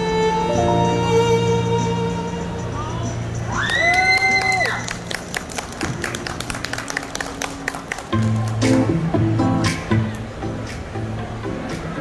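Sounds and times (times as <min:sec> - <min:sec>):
violin playing over backing track: 0:00.0 - 0:03.5
music track: 0:00.0 - 0:12.0
audience clapping and cheering: 0:03.6 - 0:09.1.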